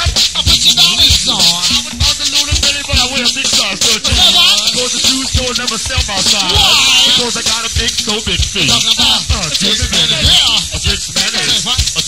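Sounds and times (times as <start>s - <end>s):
live band playing a groove: 0.0s - 12.0s
person rapping: 0.0s - 12.0s.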